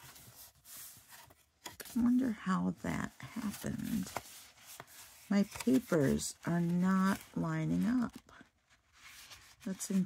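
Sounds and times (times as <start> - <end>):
paper rustling and sliding: 0.0 - 2.0, 3.2 - 10.0
woman speaking: 2.0 - 4.2, 5.3 - 8.4, 9.7 - 10.0.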